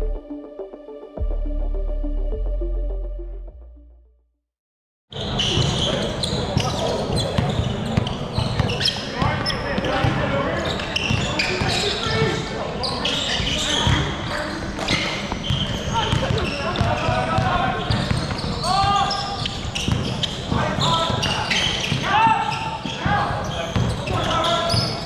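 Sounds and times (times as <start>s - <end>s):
players' voices: 5.2s - 25.0s
basketball bouncing on court: 5.5s - 12.4s, 14.8s - 25.0s.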